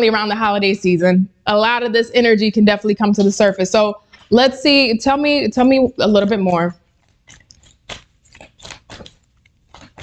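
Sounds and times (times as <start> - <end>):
cards being shuffled: 7.0 - 10.0.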